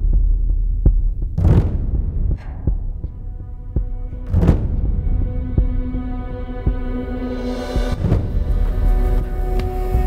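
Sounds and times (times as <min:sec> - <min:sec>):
percussive hit: 0:01.3 - 0:05.9.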